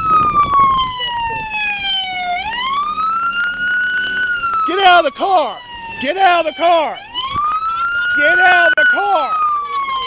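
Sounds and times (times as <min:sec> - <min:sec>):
police siren wailing: 0:00.0 - 0:10.0.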